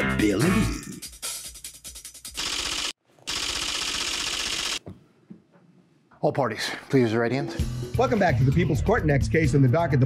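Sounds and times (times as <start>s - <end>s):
rapid clicks like typing: 2.4s - 4.8s.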